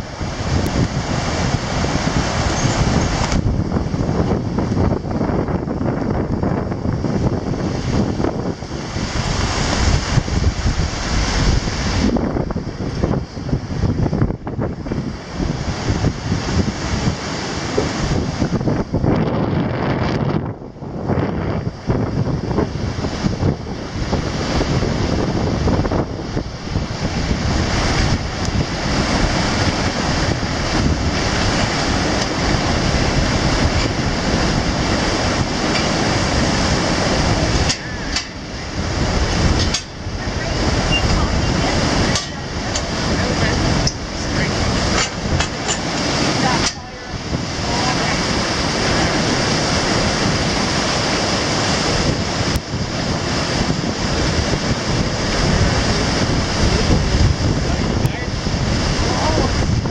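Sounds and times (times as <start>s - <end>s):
river water rushing along hull: 0.0s - 59.9s
wind on microphone: 0.0s - 59.9s.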